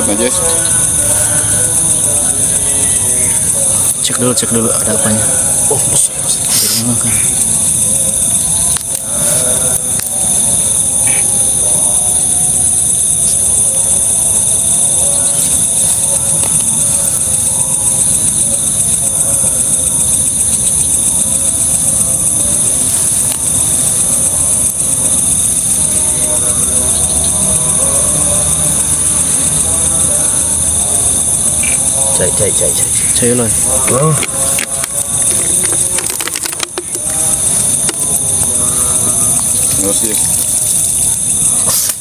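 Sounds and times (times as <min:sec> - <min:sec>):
crickets chirping: 0:00.0 - 0:42.0.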